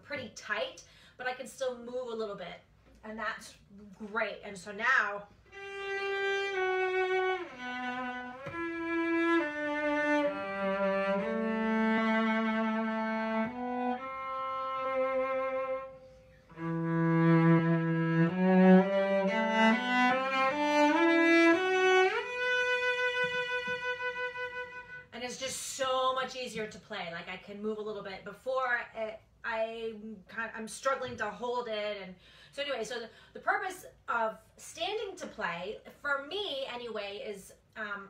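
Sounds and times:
cello bowed melody: 5.4s - 25.2s.

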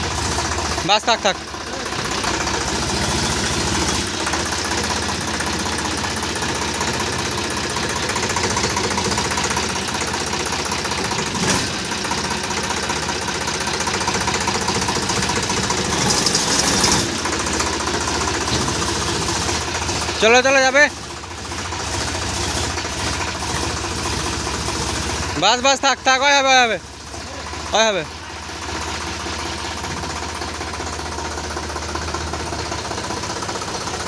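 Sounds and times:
tractor diesel engine running: 0.0s - 34.0s.

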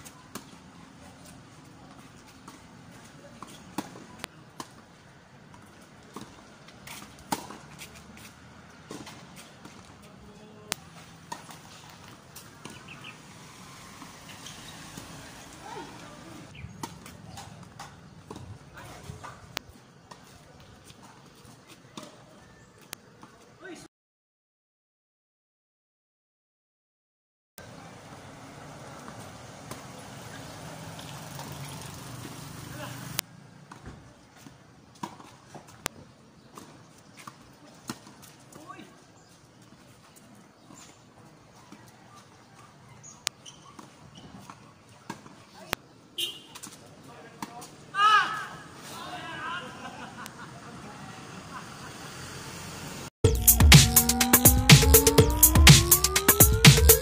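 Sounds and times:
tennis ball bouncing: 3.4s - 4.8s, 5.5s - 9.9s, 10.7s - 13.0s, 43.3s - 45.4s
racket striking tennis ball: 6.1s - 8.0s
faint distant voices: 13.8s - 23.9s.

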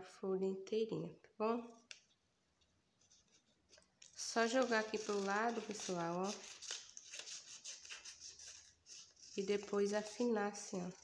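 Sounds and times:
paper rustling: 3.0s - 11.0s
scissors snipping paper: 4.0s - 11.0s.

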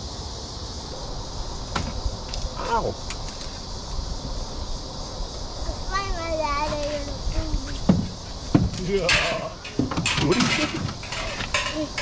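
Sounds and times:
insect chorus buzzing: 0.0s - 12.0s.

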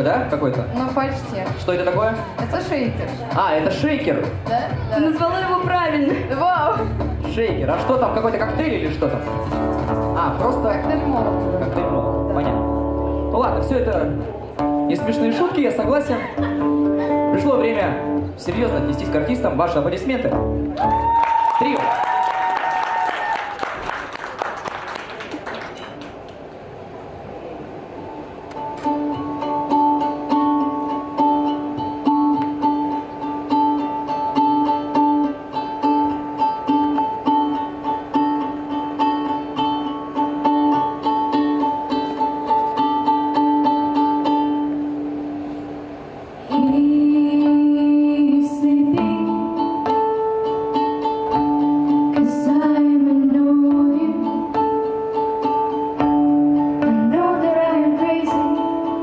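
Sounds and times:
strummed ukulele and guitar: 0.0s - 21.2s, 28.4s - 59.0s.

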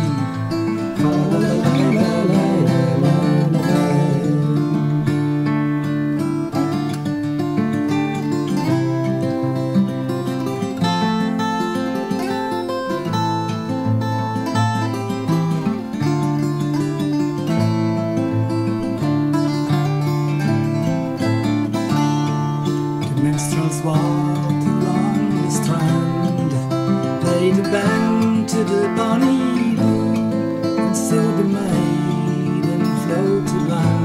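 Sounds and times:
fingerpicked acoustic guitar: 0.0s - 34.0s.

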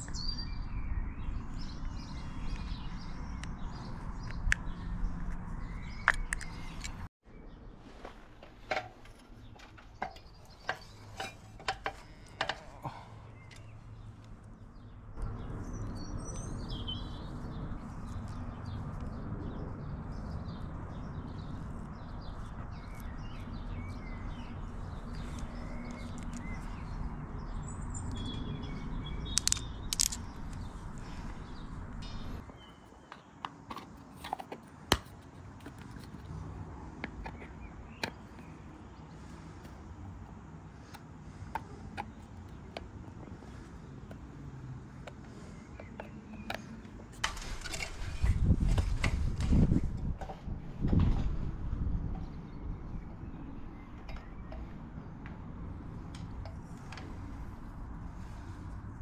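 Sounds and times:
birds chirping faintly: 0.0s - 49.8s, 52.2s - 59.0s
small clicks and scrapes: 29.3s - 31.1s, 37.0s - 51.3s.

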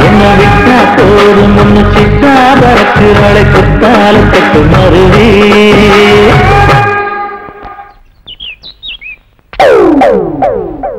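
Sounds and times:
bird chirps: 7.8s - 9.5s
electronic drum hit: 9.6s - 10.9s.

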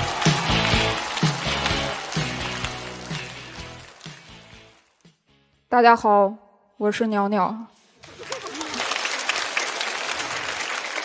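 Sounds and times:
audience applauding: 0.0s - 5.1s, 8.0s - 11.0s.

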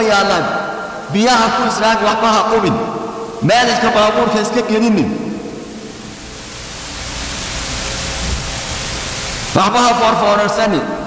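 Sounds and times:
man's voice: 0.0s - 5.4s, 9.6s - 11.0s
loud static hiss: 0.0s - 11.0s.

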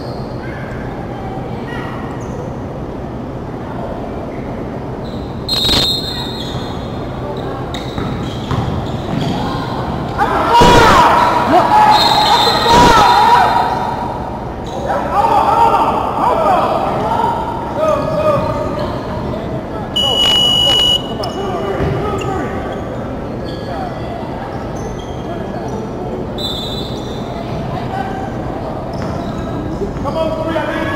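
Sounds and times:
echoing indistinct shouting: 9.4s - 19.2s.

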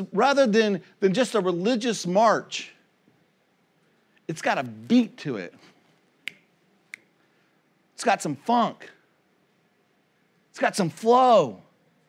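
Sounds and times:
finger snaps: 6.2s - 7.2s.

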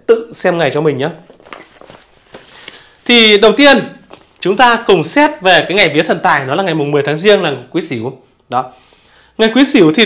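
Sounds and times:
book pages rustling: 1.2s - 3.1s, 4.0s - 4.4s.

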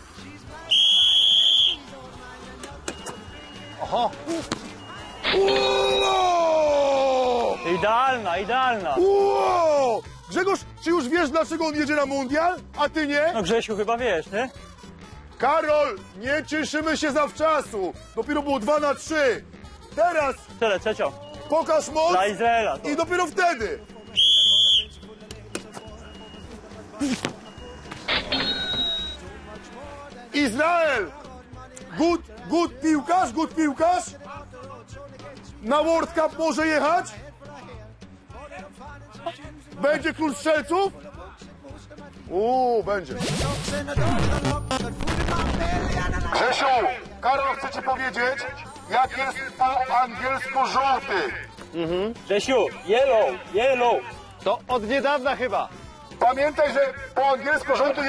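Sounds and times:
background music: 0.0s - 58.0s
high ringing: 27.4s - 29.3s
high-pitched electronic beep: 27.4s - 29.3s.

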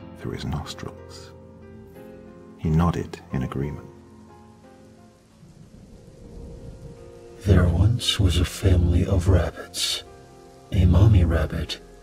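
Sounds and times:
ambient music held notes: 0.0s - 12.0s.

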